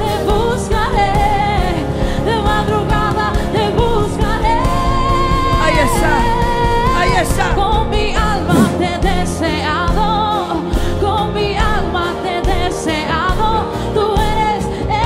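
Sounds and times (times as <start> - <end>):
women singing into microphones: 0.0 - 15.0.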